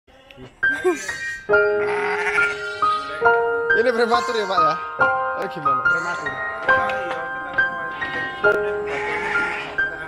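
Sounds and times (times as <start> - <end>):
background music with held notes: 0.3 - 10.0
lamb bleating: 1.7 - 3.2, 4.0 - 4.7, 5.9 - 6.4, 8.0 - 9.8.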